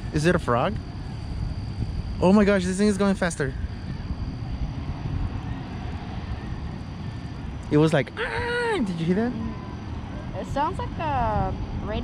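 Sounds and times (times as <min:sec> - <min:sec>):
chairlift low rumble: 0:00.0 - 0:12.0
wind noise: 0:00.0 - 0:12.0.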